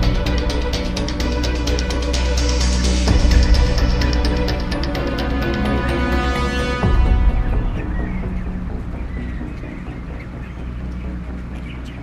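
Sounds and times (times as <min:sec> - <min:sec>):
music bed: 0:00.0 - 0:12.0
chicks cheeping: 0:07.0 - 0:12.0.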